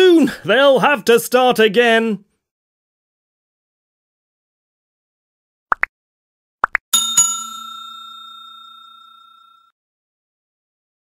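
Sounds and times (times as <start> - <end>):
bell-like chime: 6.9 - 9.8.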